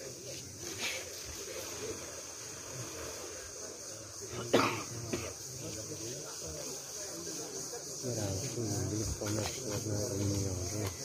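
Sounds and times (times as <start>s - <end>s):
faint high-pitched hiss: 0.0s - 11.0s
person coughing: 4.5s - 5.3s.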